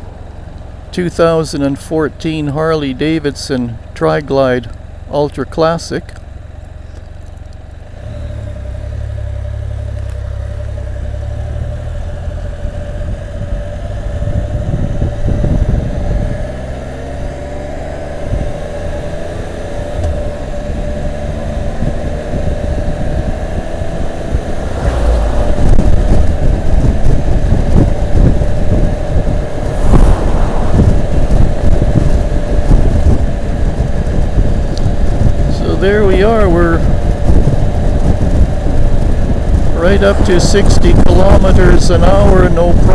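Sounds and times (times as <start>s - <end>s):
motorcycle engine accelerating: 6.1s - 42.9s
wind rushing over microphone: 12.6s - 42.9s.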